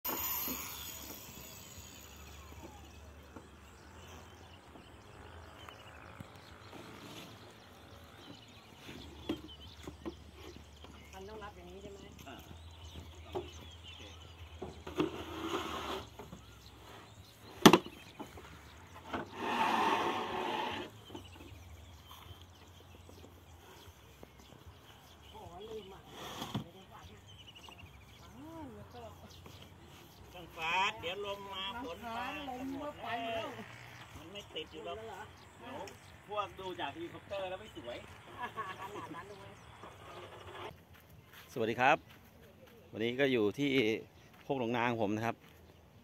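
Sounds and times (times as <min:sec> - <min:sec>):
angle grinder winding down: 0:00.1 - 0:03.2, 0:19.3 - 0:20.9.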